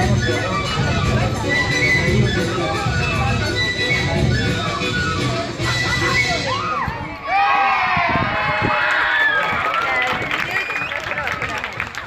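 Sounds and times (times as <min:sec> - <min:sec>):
music: 0:00.0 - 0:07.1.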